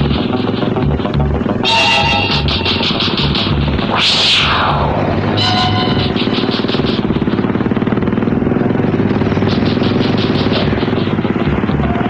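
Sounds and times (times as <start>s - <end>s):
fast background music: 0.0s - 12.0s
vehicle engine running hard: 0.0s - 12.0s.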